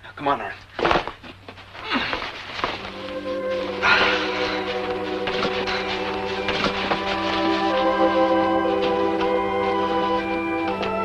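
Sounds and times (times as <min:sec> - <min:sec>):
soft background score: 0:01.8 - 0:11.0.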